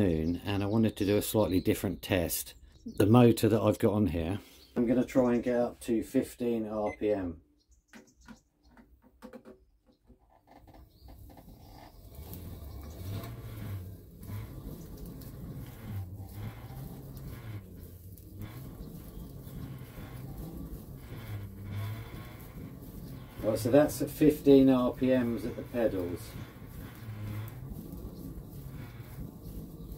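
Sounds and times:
flywheel rolling rumble: 0:00.0 - 0:01.6, 0:10.5 - 0:29.9.

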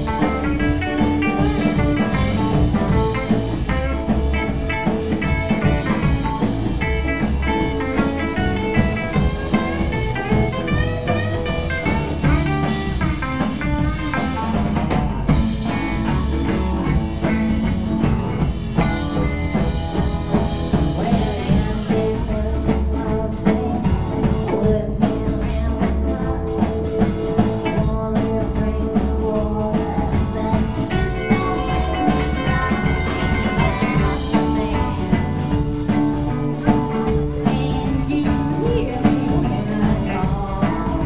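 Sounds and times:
drum kit: 0:00.0 - 0:41.0
electric guitar lead runs: 0:00.0 - 0:41.0
upright double bass: 0:00.0 - 0:41.0.

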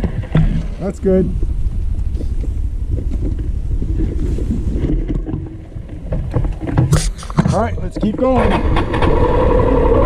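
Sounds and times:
knocks from rough road: 0:00.0 - 0:00.8, 0:04.5 - 0:10.0
wind noise on microphone: 0:00.0 - 0:10.0.

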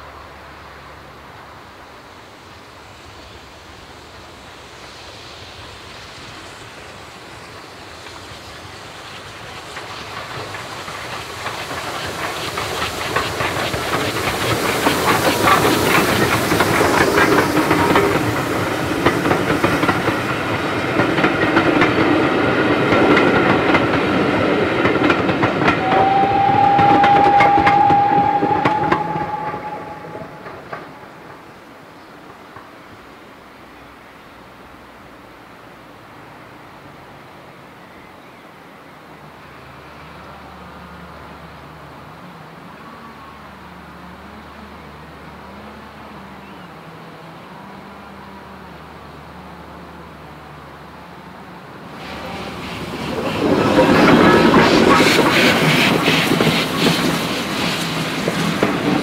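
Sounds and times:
steam train passing: 0:00.0 - 0:59.0.

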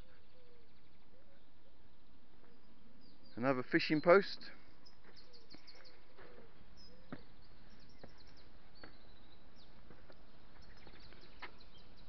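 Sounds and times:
faint birdsong: 0:00.0 - 0:12.0
outdoor noise bed: 0:00.0 - 0:12.0.

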